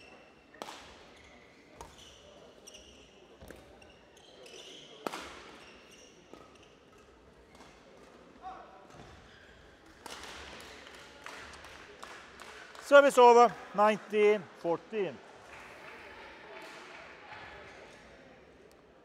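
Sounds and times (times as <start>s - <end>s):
shoe squeaks on court floor: 1.1s - 7.6s.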